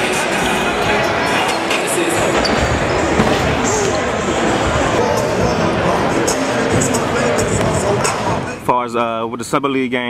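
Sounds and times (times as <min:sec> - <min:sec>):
basketballs bouncing on hardwood: 0:02.3 - 0:04.2.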